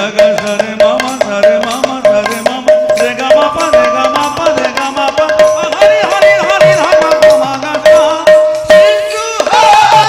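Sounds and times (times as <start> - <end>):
barrel drum beating: 0.0 - 10.0.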